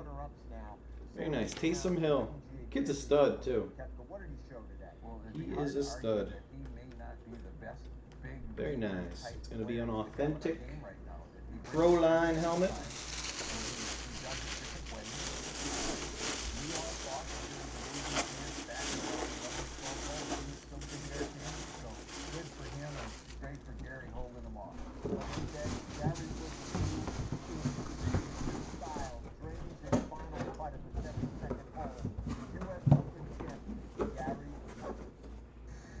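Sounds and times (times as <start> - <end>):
plastic wrapping crinkling: 11.8 - 24.0, 25.2 - 29.2.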